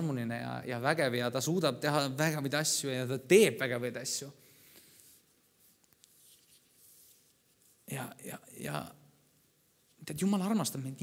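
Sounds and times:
man talking: 0:00.0 - 0:04.4, 0:07.8 - 0:09.1, 0:10.0 - 0:11.0
faint rustling: 0:04.7 - 0:08.1.

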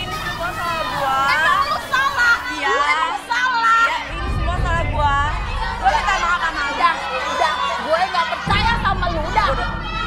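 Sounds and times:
women shouting in argument: 0:00.0 - 0:10.0.

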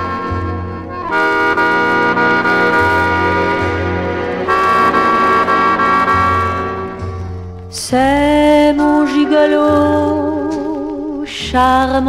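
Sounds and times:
band playing sustained chords: 0:00.0 - 0:07.6.

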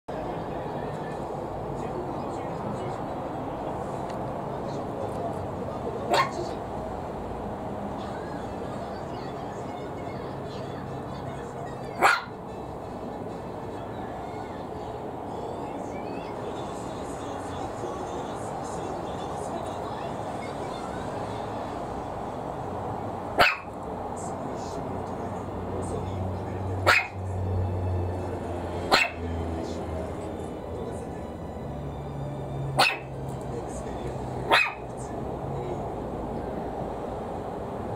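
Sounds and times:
puppy barking: 0:06.1 - 0:06.6, 0:11.9 - 0:12.4, 0:23.4 - 0:23.8, 0:26.8 - 0:27.2, 0:28.8 - 0:29.3, 0:32.8 - 0:33.2, 0:34.5 - 0:34.9.

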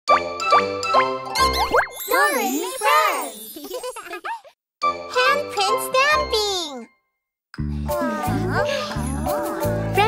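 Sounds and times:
bright jingle music: 0:00.3 - 0:07.0, 0:07.7 - 0:10.0.

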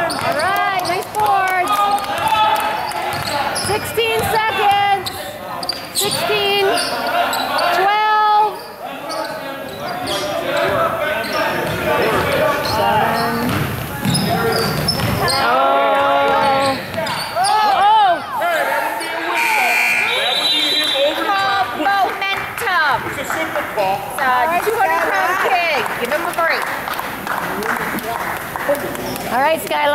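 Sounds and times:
sneaker squeaks: 0:00.0 - 0:01.0, 0:02.8 - 0:07.8, 0:08.5 - 0:11.9, 0:12.6 - 0:15.5, 0:16.2 - 0:18.4, 0:19.0 - 0:21.6
spectators' voices echoing: 0:00.0 - 0:29.9
basketball bouncing on wooden floor: 0:03.1 - 0:04.3, 0:12.9 - 0:15.2
scoreboard buzzer: 0:19.3 - 0:21.2.

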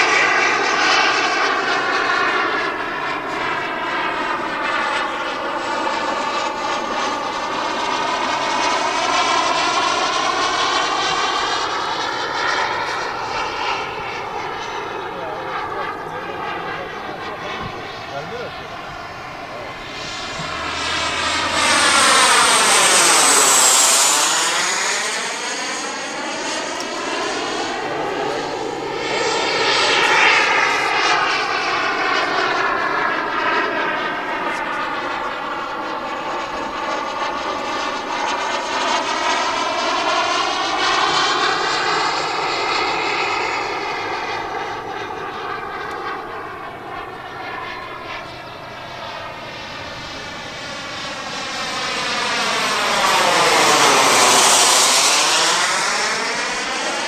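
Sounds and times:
jet turbine engines whining: 0:00.0 - 0:57.0.

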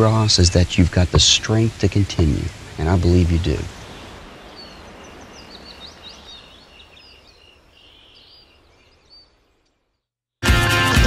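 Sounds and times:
birds chirping: 0:00.0 - 0:10.1.

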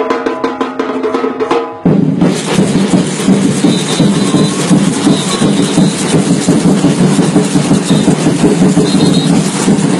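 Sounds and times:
samba percussion drumming: 0:00.0 - 0:09.9.

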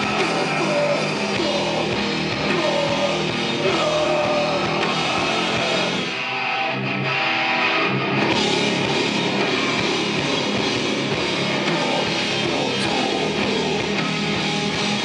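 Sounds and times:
metal band playing loud: 0:00.0 - 0:15.0
sustained guitar notes: 0:00.0 - 0:15.0.

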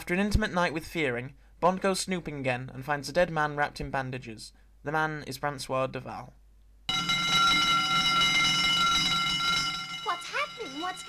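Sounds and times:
alarm bell ringing: 0:06.9 - 0:11.0.

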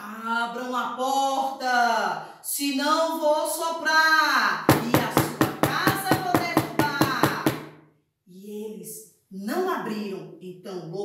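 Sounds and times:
person speaking: 0:04.6 - 0:07.6
rapid knocking on hard surface: 0:04.7 - 0:07.8.

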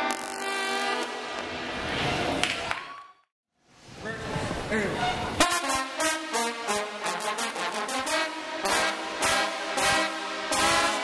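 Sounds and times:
trombones playing held chord: 0:05.0 - 0:11.0.

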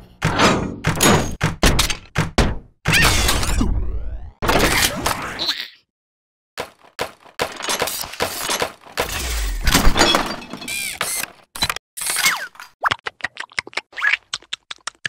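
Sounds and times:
cartoon clattering knocks and crashes: 0:00.1 - 0:03.6, 0:06.6 - 0:11.8.

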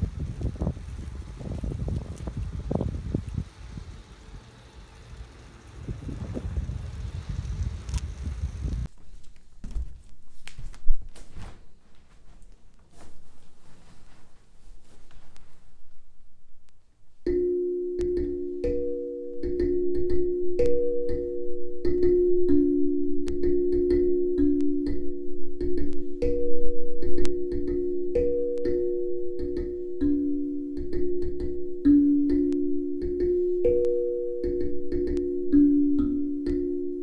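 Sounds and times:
steel drum slow melody: 0:17.3 - 0:37.0.

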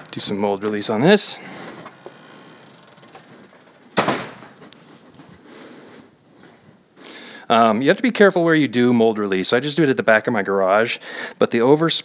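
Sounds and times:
sharp knock: 0:04.0 - 0:04.5.

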